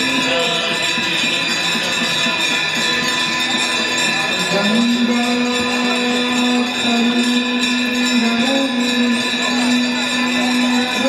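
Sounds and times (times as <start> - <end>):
jingling percussion: 0.0 - 11.0
ringing bells: 0.0 - 11.0
person singing long notes: 4.5 - 11.0.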